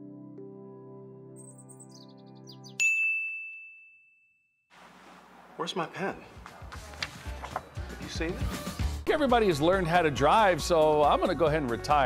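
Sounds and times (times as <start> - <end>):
bell-like ding: 2.8 - 4.4.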